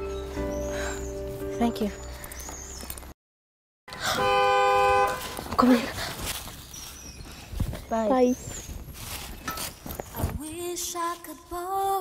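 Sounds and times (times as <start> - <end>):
car horn honk: 3.9 - 5.5.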